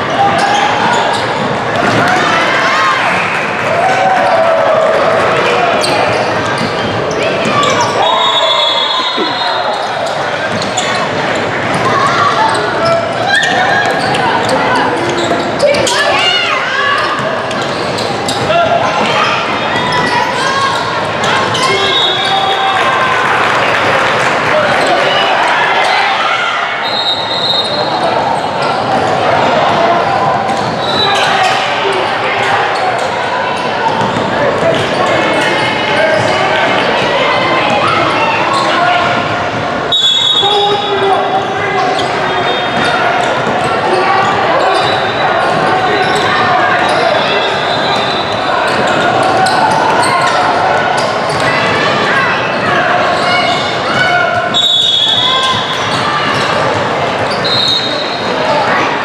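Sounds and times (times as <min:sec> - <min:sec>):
sneakers squeaking: 0:00.0 - 0:03.2, 0:04.2 - 0:22.8, 0:25.8 - 0:58.9
hubbub of voices: 0:00.0 - 0:59.0.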